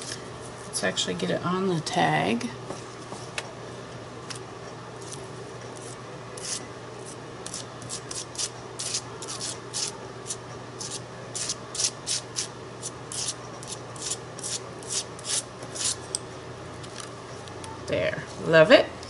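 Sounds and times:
palette knife scraping paste: 7.4 - 16.0.

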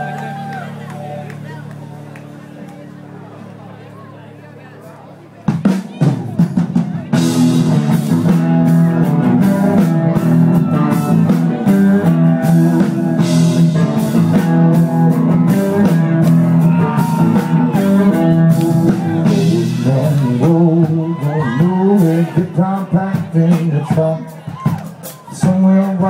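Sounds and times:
rock band playing: 5.4 - 26.0.

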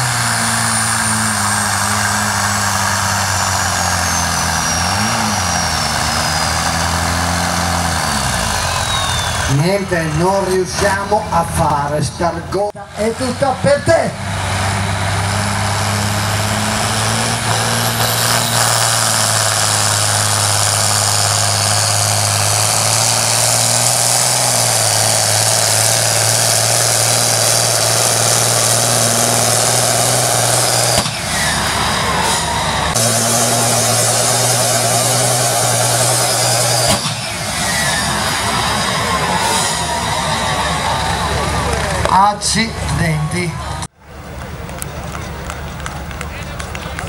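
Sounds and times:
diesel tractor engine droning: 0.0 - 47.0.

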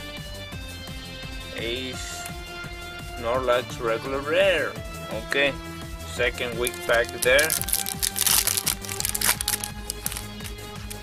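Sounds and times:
background music with held tones: 0.0 - 11.0
foil wrapper crinkling: 6.6 - 11.0.

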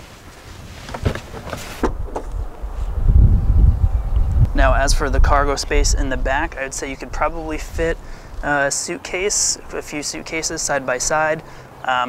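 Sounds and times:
rustling: 0.0 - 3.0
wind rumble on microphone: 0.5 - 8.6.

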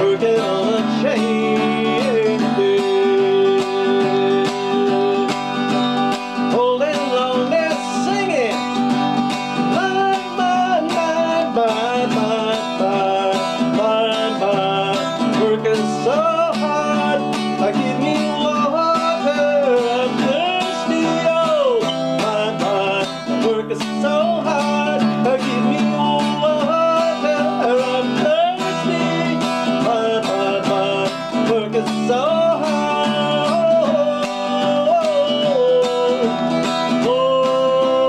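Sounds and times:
acoustic guitar strumming: 0.0 - 38.0
man singing: 0.0 - 38.0.

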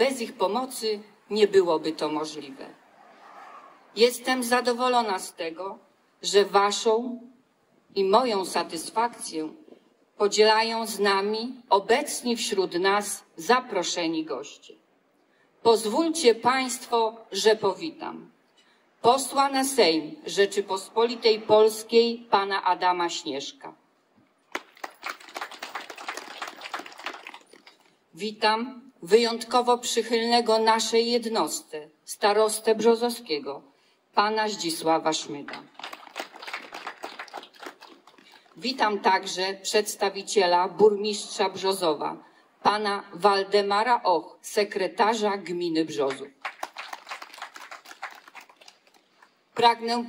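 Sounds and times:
audience applauding: 24.5 - 27.8, 35.7 - 38.5, 46.4 - 49.0.

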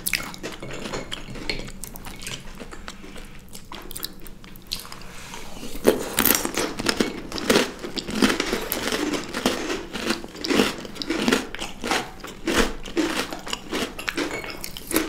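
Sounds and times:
close chewing and biting: 0.0 - 15.0.

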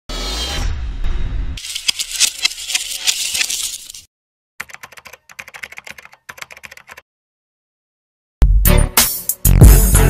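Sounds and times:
fast keyboard typing clicks: 4.6 - 7.0.

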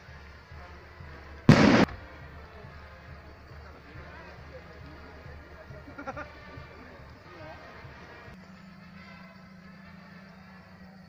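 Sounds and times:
skyrocket bang: 1.5 - 2.0.

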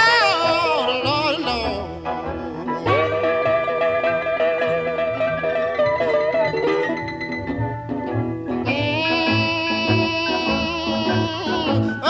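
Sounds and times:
rhythm section beat: 0.0 - 8.6
electric guitar bending notes: 0.0 - 12.0.

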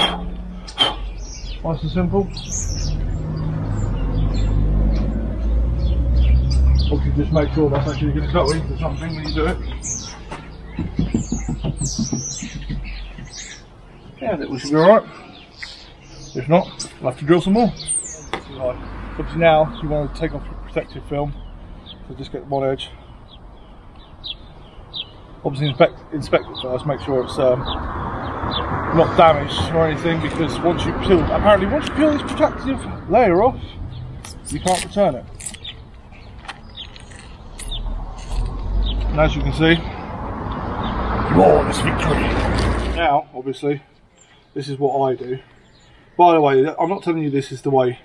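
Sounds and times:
small birds chirping: 0.0 - 48.0.

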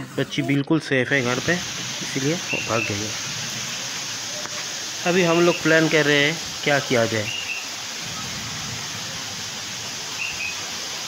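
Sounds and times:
heavy rain hissing: 0.0 - 11.0
faint high chirp: 10.2 - 10.6.

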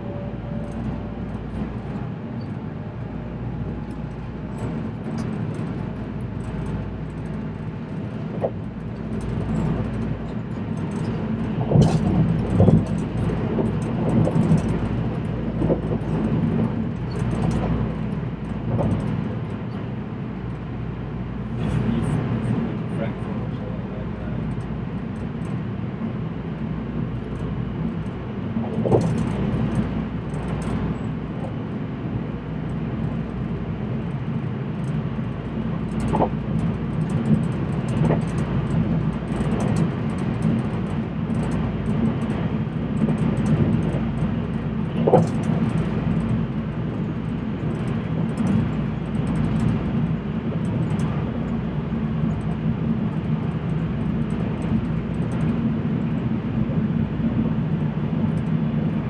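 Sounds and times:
train rumble and hum: 0.0 - 59.0
wheels clicking on track: 0.6 - 20.6, 32.4 - 56.2.

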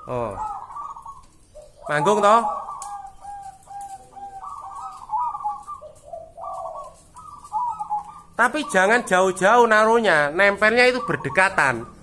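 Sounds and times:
dove cooing: 0.0 - 12.0.

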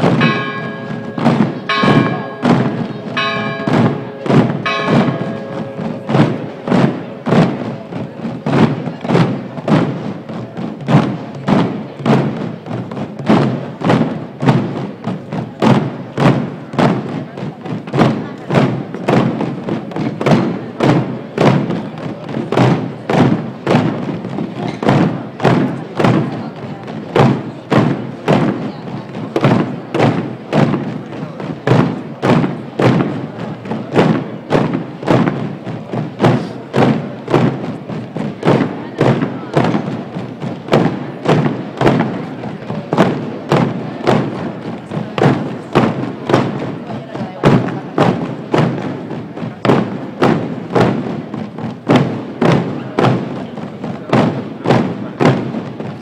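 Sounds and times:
drums beating march: 0.0 - 56.0.

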